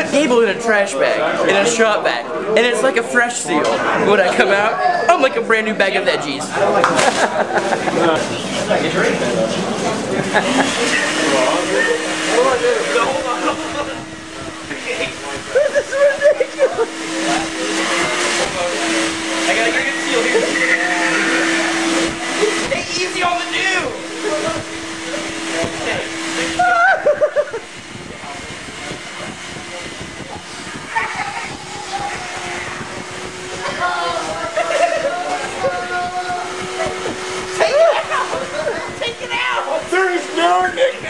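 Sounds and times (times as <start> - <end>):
people talking: 0.0 - 41.0
shop vac running: 0.0 - 41.0
voices: 0.0 - 41.0
people laughing: 6.5 - 41.0
laughter: 6.8 - 8.3, 10.2 - 11.0, 15.5 - 16.9, 26.7 - 27.6, 34.4 - 35.3.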